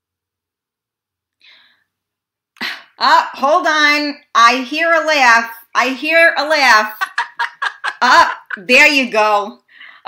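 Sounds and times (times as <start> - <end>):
faint breathy sound: 1.4 - 2.0
person laughing quickly: 6.9 - 8.7.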